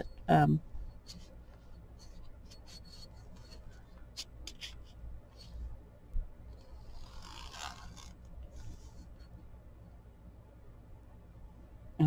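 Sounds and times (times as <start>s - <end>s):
pen scratching on paper: 1.1s - 5.6s, 6.7s - 9.2s.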